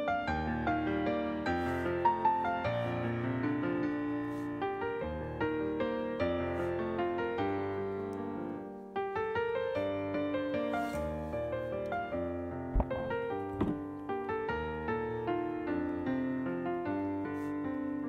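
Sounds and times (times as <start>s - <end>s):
piano music: 0.0s - 18.0s
low thumps: 12.7s - 14.0s.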